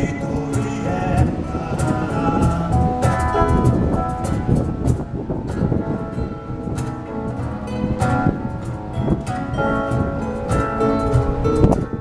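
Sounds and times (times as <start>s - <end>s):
acoustic guitars strumming: 0.0s - 12.0s
hand percussion beat: 0.0s - 12.0s.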